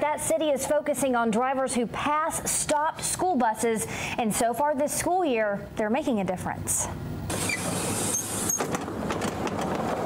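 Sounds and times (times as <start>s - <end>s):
air hiss of bus doors: 7.3s - 8.9s
door squeaks: 7.3s - 9.4s
door mechanism clicks and rattles: 8.4s - 10.0s.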